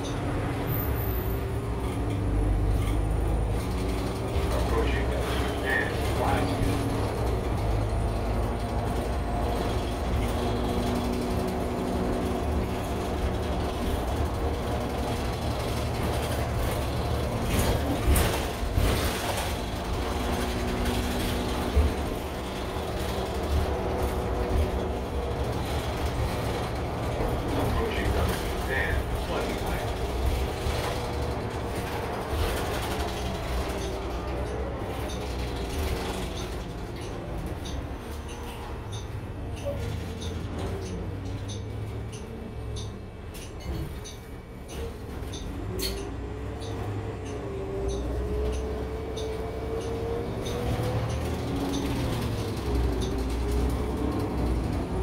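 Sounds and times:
bus engine whining: 0:00.0 - 0:55.0.

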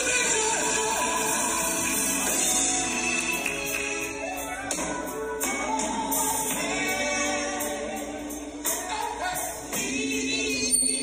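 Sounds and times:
gospel choir singing: 0:00.0 - 0:11.0
live church band: 0:00.0 - 0:11.0.

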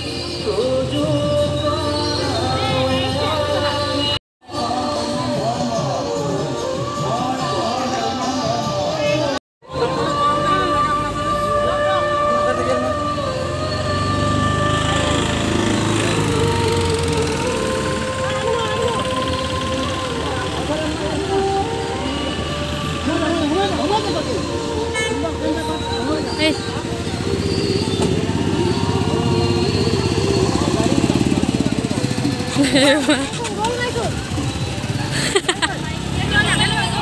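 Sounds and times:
person singing through loudspeaker: 0:00.0 - 0:33.2
truck engines running: 0:08.2 - 0:37.0.

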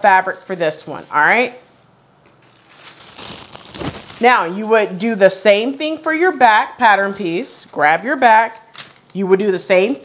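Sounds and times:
paper rustling: 0:02.3 - 0:04.8.

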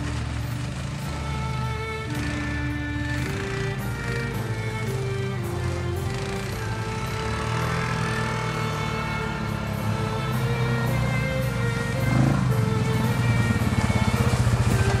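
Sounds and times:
background music: 0:00.0 - 0:15.0
quad bike engine running: 0:00.0 - 0:15.0.

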